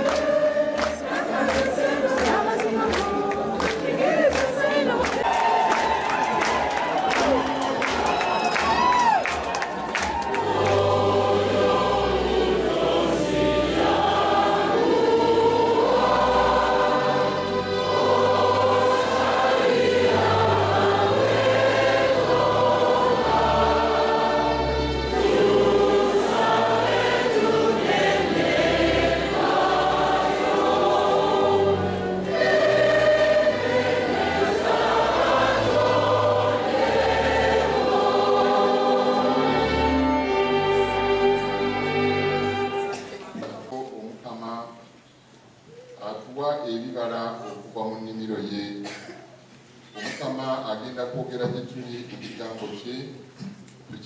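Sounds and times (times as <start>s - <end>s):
choir singing a hymn: 0.0s - 6.5s, 10.1s - 43.2s.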